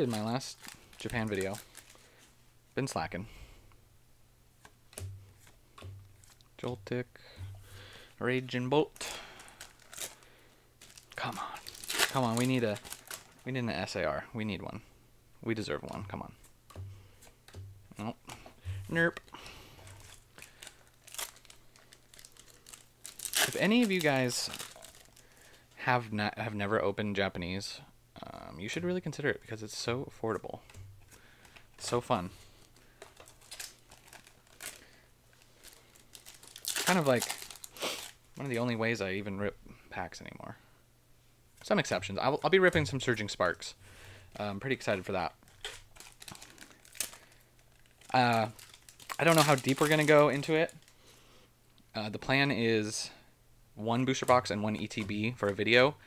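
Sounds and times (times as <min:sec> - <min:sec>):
foil crinkle: 0:00.0 - 0:02.3, 0:09.0 - 0:13.5, 0:19.6 - 0:25.7, 0:32.6 - 0:38.2, 0:44.8 - 0:51.0
foil pack rustling: 0:00.0 - 0:02.3, 0:09.0 - 0:14.0, 0:18.7 - 0:25.8, 0:30.7 - 0:38.6, 0:44.3 - 0:51.0.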